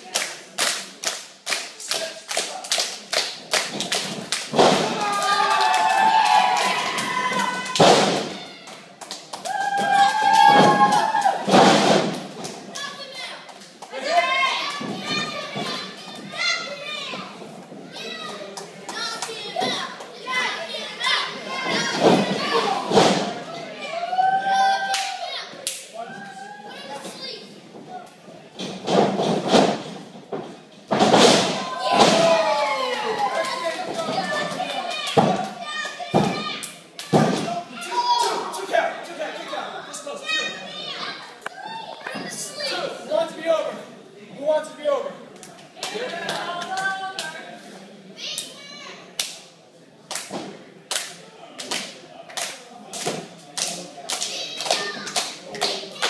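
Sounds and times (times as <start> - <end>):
children shouting: 5.0 - 8.8, 31.6 - 38.6.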